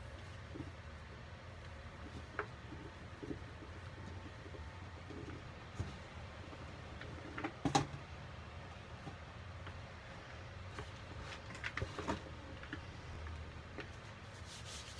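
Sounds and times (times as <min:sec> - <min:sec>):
steady low hum: 0:00.0 - 0:14.9.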